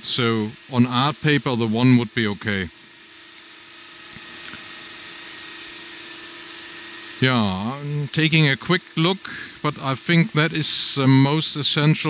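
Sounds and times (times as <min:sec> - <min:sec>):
steady hiss: 0:00.0 - 0:02.7.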